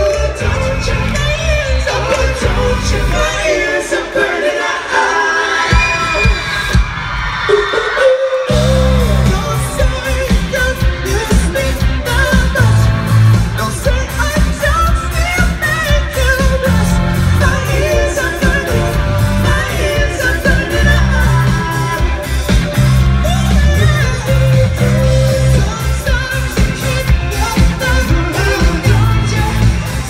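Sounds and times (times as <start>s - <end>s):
bass and drums: 0.0s - 4.1s, 5.6s - 7.7s, 8.4s - 30.0s
male lead vocals: 0.0s - 6.8s, 7.5s - 30.0s.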